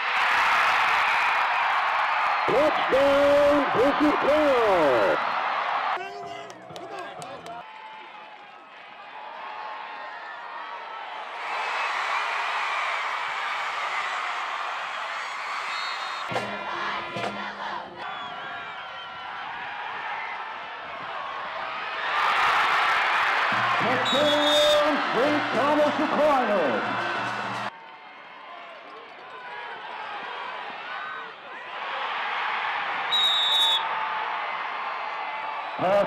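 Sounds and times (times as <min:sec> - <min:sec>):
stadium crowd cheering: 0:00.0 - 0:36.0.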